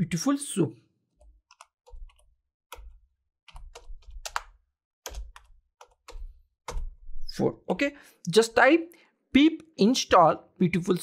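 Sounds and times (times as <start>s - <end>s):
computer keyboard typing: 1.2s - 7.0s.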